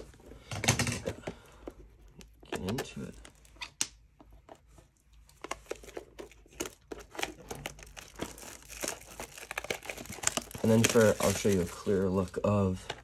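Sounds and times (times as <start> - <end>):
plastic wrapping crinkling and tearing: 1.7 - 13.0.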